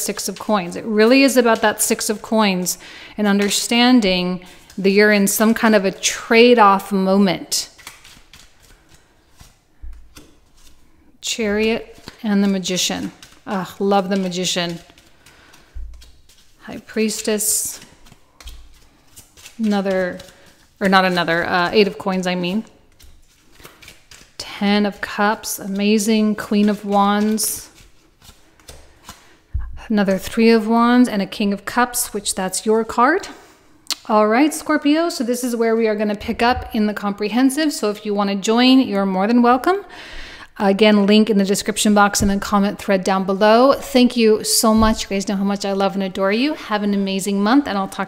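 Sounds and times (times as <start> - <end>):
cards sliding and clicking: 7.7 - 10.8, 11.6 - 13.5, 14.2 - 16.6, 17.8 - 20.8, 22.8 - 24.4, 26.6 - 29.5.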